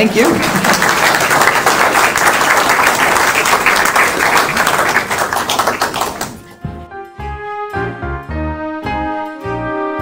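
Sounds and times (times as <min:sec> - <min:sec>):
audience applauding: 0:00.0 - 0:06.5
music: 0:05.4 - 0:10.0.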